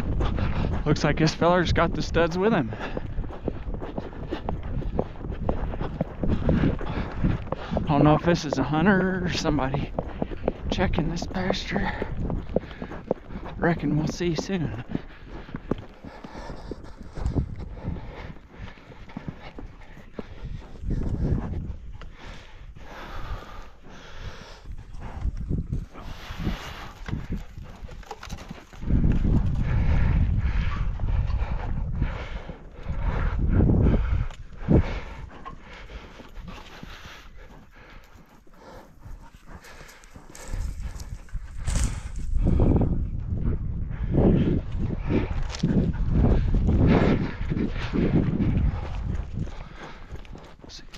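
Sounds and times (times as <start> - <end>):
horse hoofbeats on dirt: 0.0 - 50.9.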